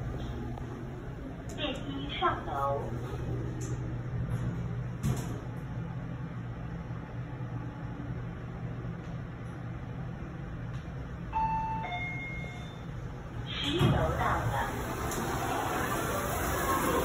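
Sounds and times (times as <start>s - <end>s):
elevator hum: 0.0s - 17.0s
two-note elevator chime: 11.3s - 12.9s.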